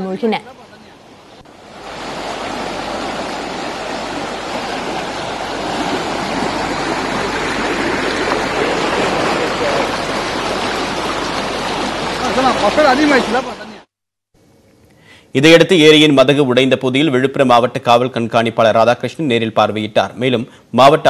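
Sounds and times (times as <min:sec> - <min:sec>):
floodwater rushing: 0:01.1 - 0:13.9.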